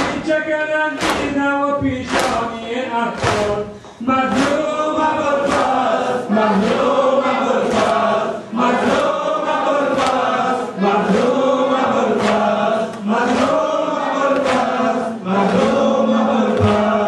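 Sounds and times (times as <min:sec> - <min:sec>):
men chanting a lament: 0:00.0 - 0:17.0
chest-beating slaps: 0:01.0 - 0:01.4, 0:02.0 - 0:02.5, 0:03.2 - 0:04.8, 0:05.4 - 0:05.8, 0:09.9 - 0:10.5, 0:12.1 - 0:14.9, 0:16.5 - 0:17.0.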